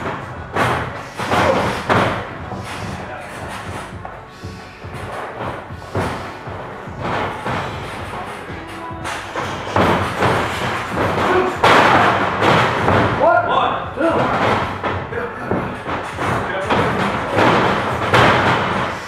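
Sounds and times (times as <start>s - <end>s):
background music: 0.0s - 19.0s
bodies thudding on wrestling ring: 4.8s - 13.3s, 14.1s - 19.0s.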